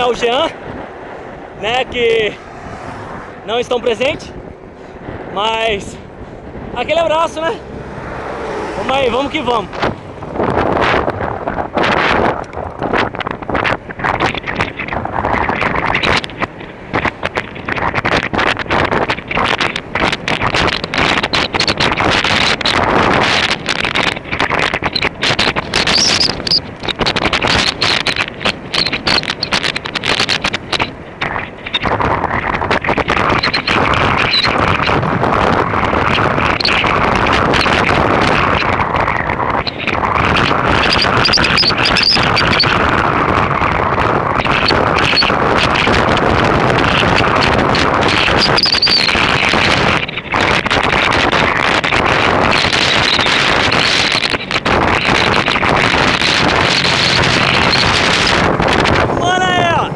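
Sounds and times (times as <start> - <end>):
wind buffeting microphone: 0.0 - 59.9
bicycle knocks and rattles: 9.7 - 59.0.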